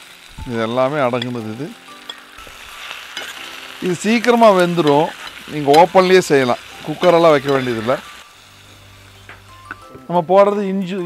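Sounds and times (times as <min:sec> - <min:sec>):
meat sizzling in hot oil: 0:00.0 - 0:10.0.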